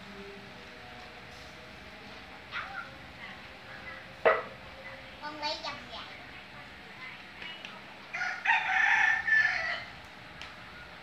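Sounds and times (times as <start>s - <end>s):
rooster crowing: 8.1s - 10.0s.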